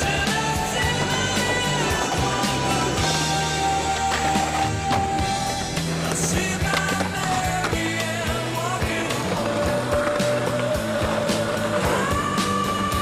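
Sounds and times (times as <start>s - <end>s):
rock music with bending guitar: 0.0s - 13.0s
skateboard clacks and knocks: 0.0s - 13.0s.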